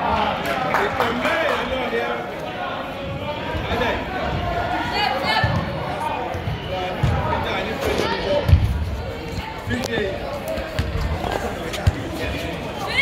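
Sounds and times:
voices echoing in a hall: 0.0s - 13.0s
soccer ball thumping: 10.7s - 12.1s.

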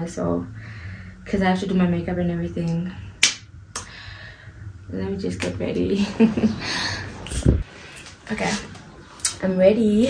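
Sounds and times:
sharp snap: 3.2s - 3.9s.

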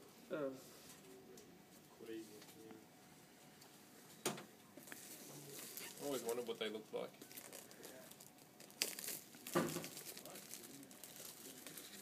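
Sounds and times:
plastic bag crinkling: 4.9s - 12.0s.

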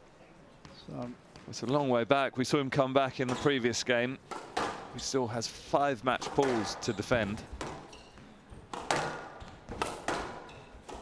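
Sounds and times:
squash ball hits with echo: 4.3s - 4.9s, 6.2s - 11.0s.

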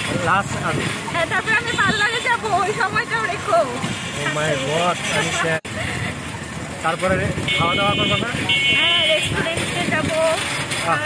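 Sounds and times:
street noise: 0.0s - 11.0s
people talking: 0.1s - 6.2s, 6.8s - 11.0s
vehicle horn beeps: 7.4s - 9.4s.

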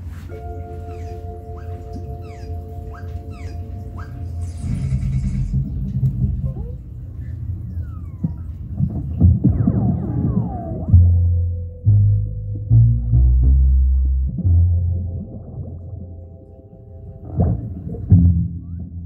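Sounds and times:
cartoon music: 0.3s - 5.6s
deep bass rumble: 0.8s - 19.0s
sliding whistle effects: 7.7s - 8.6s, 9.4s - 11.2s.

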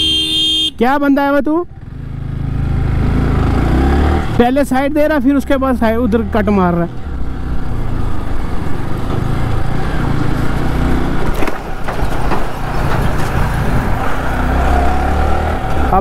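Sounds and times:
wind and road noise: 0.0s - 16.0s
truck passing: 1.8s - 16.0s.

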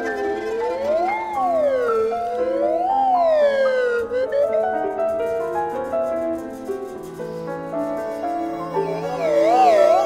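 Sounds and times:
siren-like sliding pitched line: 0.0s - 4.7s, 8.6s - 10.0s.

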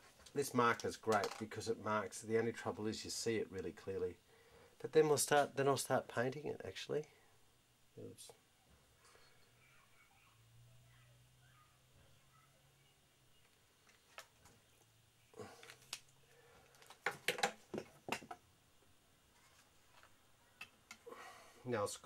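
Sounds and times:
faint steady hum: 0.0s - 22.0s
tools clicking and knocking: 1.1s - 1.5s, 16.8s - 18.4s.

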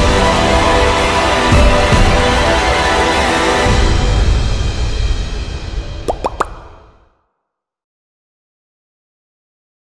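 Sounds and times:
music: 0.0s - 7.2s
rising bloops: 6.1s - 6.8s.

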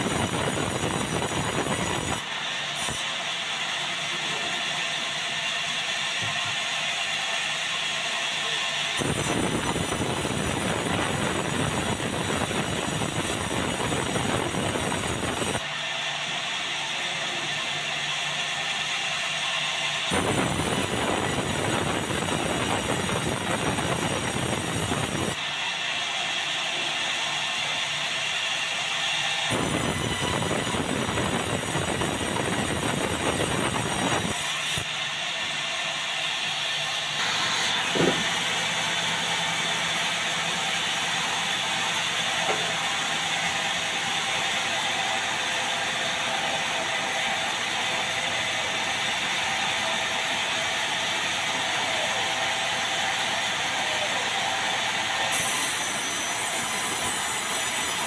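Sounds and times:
band saw cutting timber: 26.6s - 35.0s, 36.4s - 50.1s, 55.2s - 58.0s.

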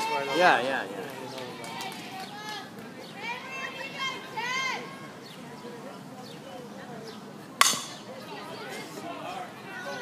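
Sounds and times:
spectator chatter: 0.0s - 10.0s
bat hitting ball ping: 7.6s - 8.0s.

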